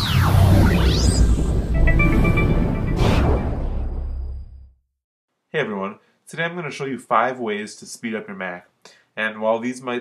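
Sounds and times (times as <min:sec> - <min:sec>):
rising swoosh: 0:00.0 - 0:04.4.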